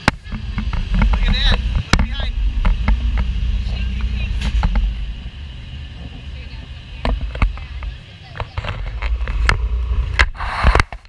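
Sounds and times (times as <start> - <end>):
ride vehicle rumbling on track: 0.0 - 11.0.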